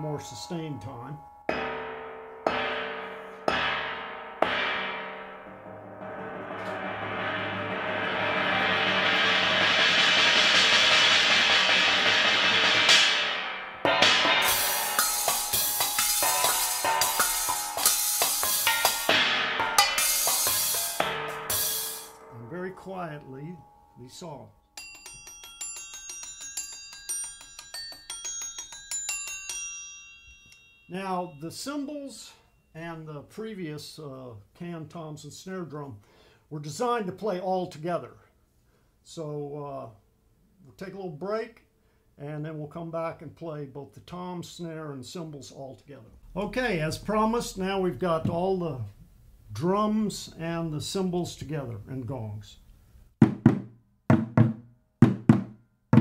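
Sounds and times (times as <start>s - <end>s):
light pinging strikes: 0.0s - 9.8s, 13.1s - 29.7s
metal cymbals played fast: 1.5s - 22.5s
metal gong struck with mallets: 1.5s - 23.8s.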